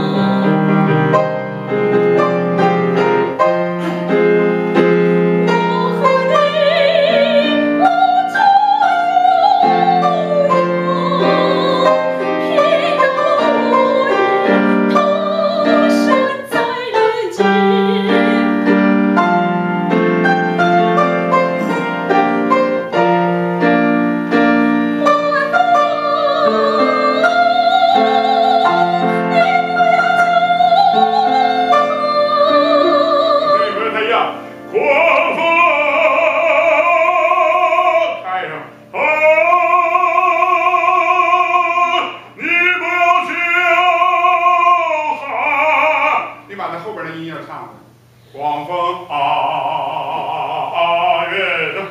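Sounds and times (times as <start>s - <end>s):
woman singing operatically: 0.0s - 1.0s, 5.4s - 18.8s, 24.9s - 34.1s, 34.7s - 38.2s, 38.9s - 46.4s
grand piano: 0.0s - 51.9s.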